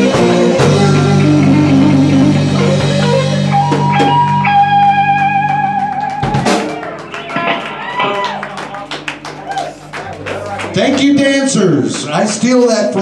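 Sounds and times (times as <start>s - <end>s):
blues band playing: 0.0s - 13.0s.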